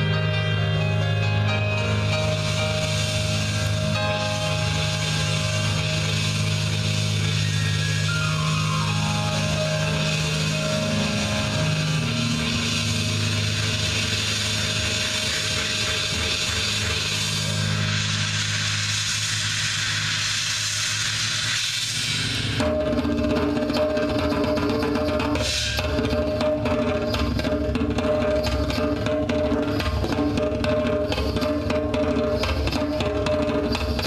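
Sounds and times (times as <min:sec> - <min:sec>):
drum kit playing: 0:00.0 - 0:20.8, 0:22.1 - 0:34.0
steady held pitched notes: 0:00.0 - 0:20.8
cymbal wash: 0:00.0 - 0:34.0.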